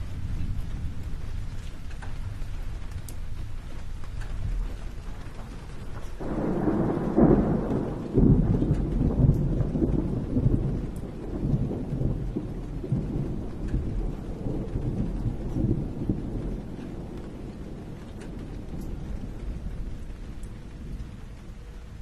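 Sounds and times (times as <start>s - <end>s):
steady rain: 0.0s - 22.0s
thunder rumbling: 0.0s - 22.0s.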